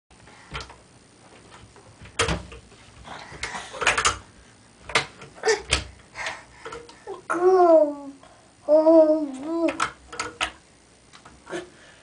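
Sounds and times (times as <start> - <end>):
toddler sing-song voice: 7.3 - 9.9.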